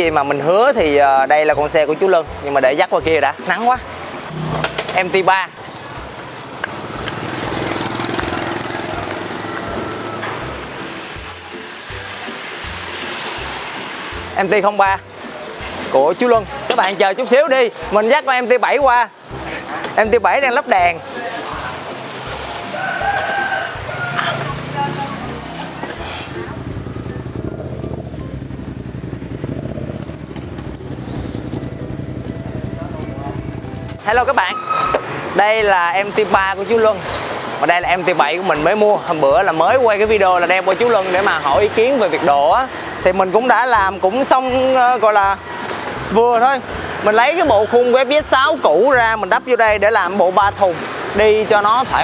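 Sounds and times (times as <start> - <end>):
motorbike engines passing: 0.0 - 52.0
street traffic: 0.0 - 52.0
motorcycle engine at low revs: 26.6 - 32.7.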